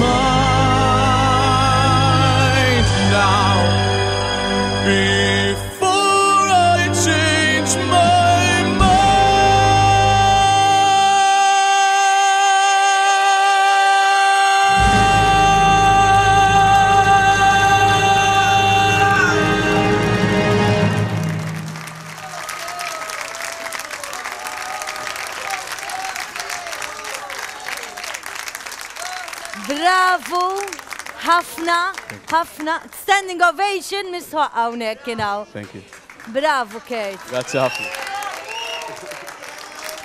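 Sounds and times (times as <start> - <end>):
orchestral backing music: 0.0 - 11.1, 14.8 - 22.2
man singing a high note: 0.0 - 20.8
audience applauding and cheering: 12.9 - 32.9, 35.0 - 40.0.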